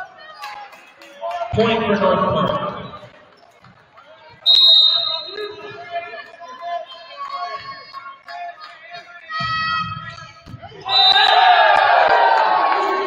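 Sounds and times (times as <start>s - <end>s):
gym chatter: 0.0s - 13.0s
referee whistle blast: 4.4s - 5.6s, 10.9s - 11.4s
people shouting: 10.8s - 13.0s.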